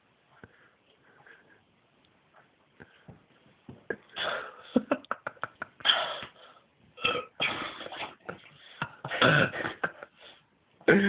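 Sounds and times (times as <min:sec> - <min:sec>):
man burping: 0:07.0 - 0:07.8, 0:09.1 - 0:09.8
man coughing and gasping: 0:08.8 - 0:10.1.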